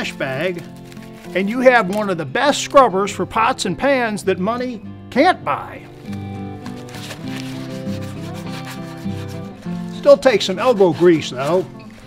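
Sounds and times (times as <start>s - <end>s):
foil scrubber scouring iron pot: 6.8s - 12.0s.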